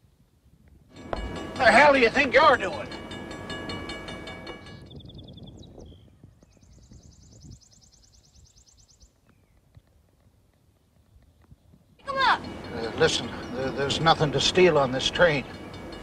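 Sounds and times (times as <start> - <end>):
diesel locomotive humming: 0.9 - 5.0, 12.0 - 16.0.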